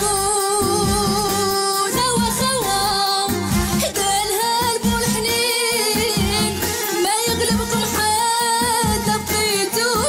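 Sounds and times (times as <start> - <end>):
instrumental accompaniment: 0.0 - 10.0
woman singing: 0.0 - 10.0.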